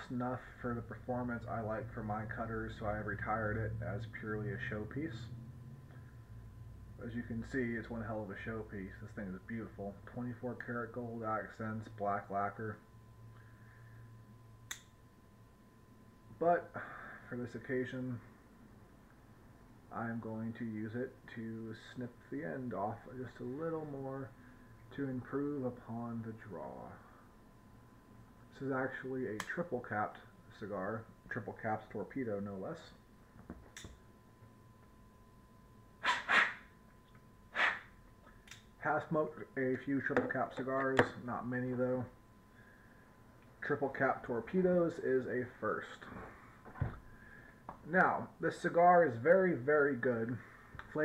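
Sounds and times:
faint steady hum: 0:00.0 - 0:51.0
sharp click: 0:14.7 - 0:15.0.

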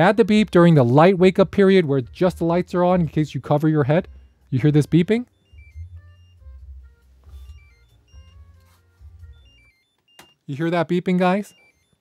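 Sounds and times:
short electronic alarm tones: 0:04.0 - 0:10.5, 0:11.4 - 0:12.0.

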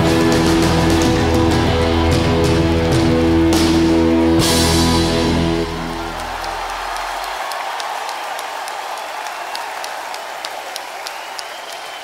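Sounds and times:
audience applause: 0:04.9 - 0:12.0.

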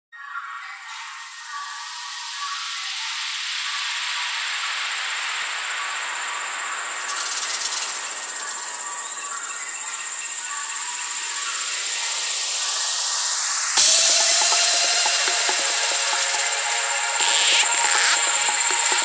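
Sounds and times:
hissing electronic noise sweep: 0:01.3 - 0:19.0
faint steady high tone: 0:13.8 - 0:19.0.

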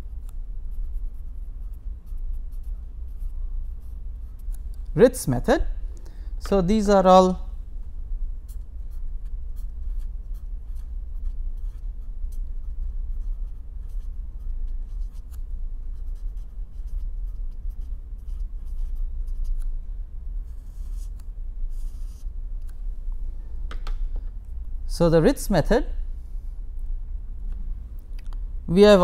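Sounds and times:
pen scratching on paper: 0:00.7 - 0:04.6, 0:08.4 - 0:19.6, 0:20.4 - 0:22.3.

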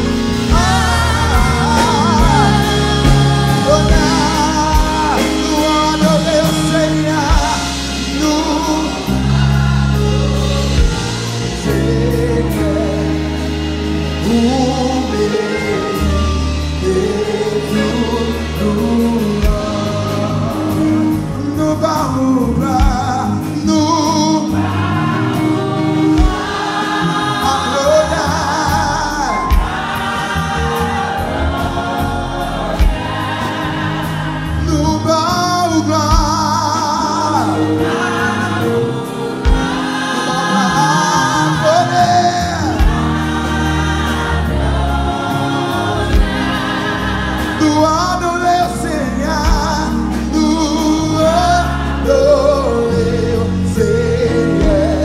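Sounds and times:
bass guitar: 0:00.0 - 0:55.0
drums: 0:00.0 - 0:55.0
voices singing together: 0:00.0 - 0:55.0.

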